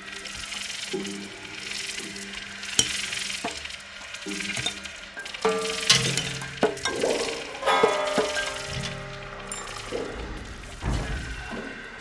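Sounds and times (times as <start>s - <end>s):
high clinking texture: 4.5s - 10.9s.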